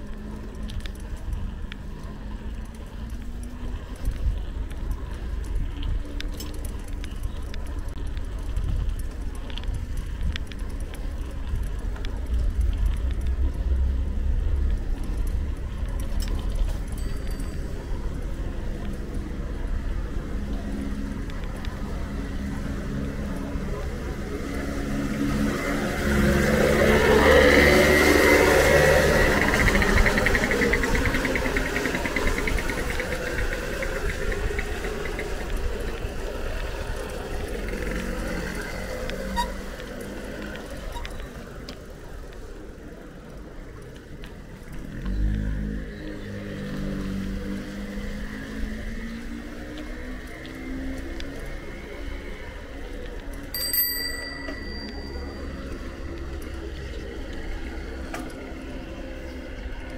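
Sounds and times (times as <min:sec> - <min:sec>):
vehicle engine passing: 0:21.8 - 0:40.6
bright ringing tone: 0:53.6 - 0:55.7.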